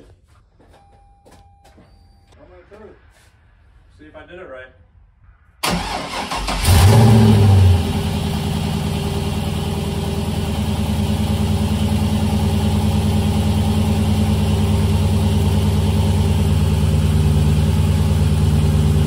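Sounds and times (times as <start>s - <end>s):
engine starter cranking: 5.6s - 7.5s
car engine idling: 5.6s - 19.0s.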